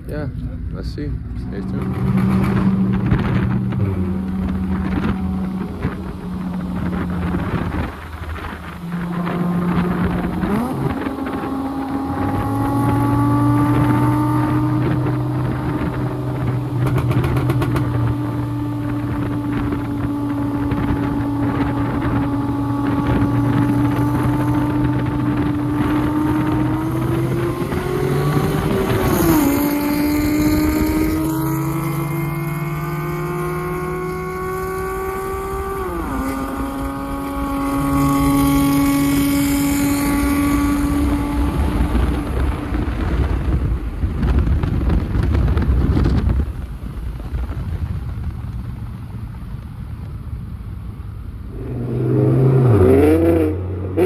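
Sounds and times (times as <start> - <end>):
car engine cruising and accelerating: 0.0 - 54.0
engine of car alongside: 0.0 - 54.0.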